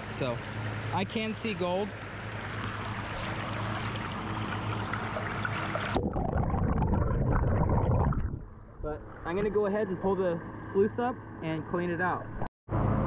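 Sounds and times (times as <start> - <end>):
creek water rushing over rocks: 2.0 - 6.0.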